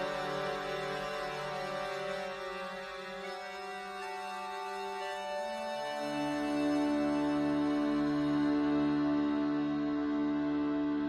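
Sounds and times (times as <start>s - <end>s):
instrumental backing track chords: 0.0s - 11.0s.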